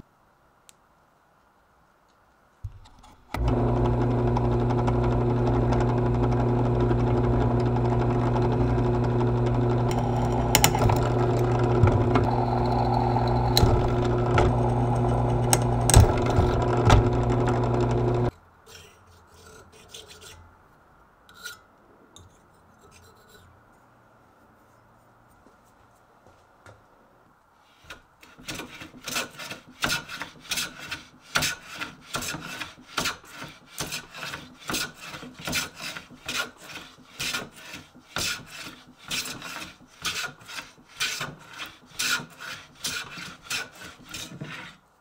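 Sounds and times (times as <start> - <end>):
drill bit scraping metal: 3.4 - 18.3
drill press motor running: 3.4 - 18.3.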